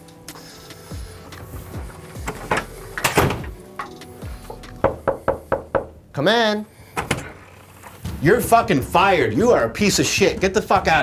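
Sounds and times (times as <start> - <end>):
wooden door thudding shut: 2.2 - 3.6
door handle clunks: 2.2 - 6.0
knuckle knock on door: 4.8 - 5.9.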